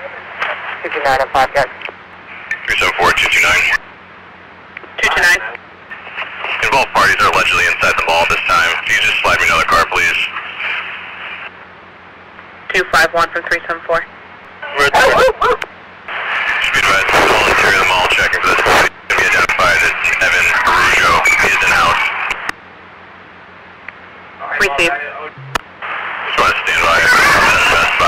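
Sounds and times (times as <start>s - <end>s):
radio static hiss: 0.0s - 22.6s, 24.1s - 28.0s
faint steady noise: 0.0s - 28.0s.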